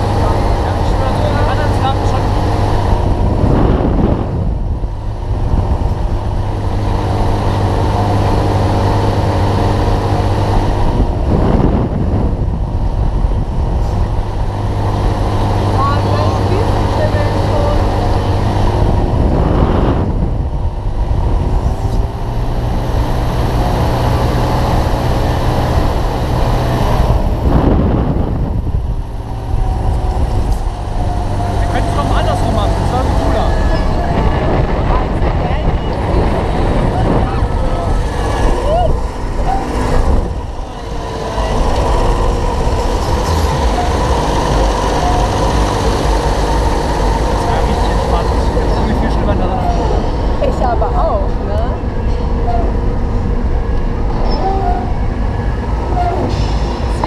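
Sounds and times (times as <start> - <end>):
ride machine hum: 0.0 - 57.0
rushing air: 0.0 - 57.0.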